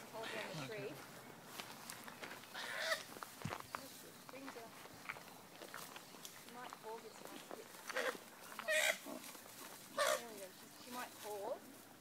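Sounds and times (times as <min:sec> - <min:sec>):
rustling: 0:00.0 - 0:12.0.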